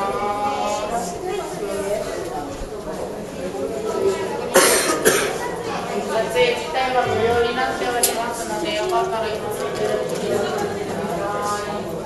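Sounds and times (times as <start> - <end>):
murmur of people talking: 0.0 - 12.0
person coughing: 7.1 - 7.5.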